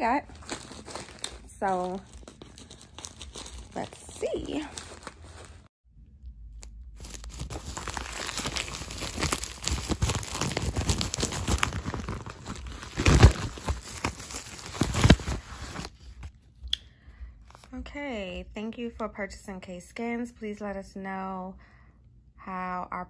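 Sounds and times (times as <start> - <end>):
paper and plastic tearing: 7.0 - 15.9.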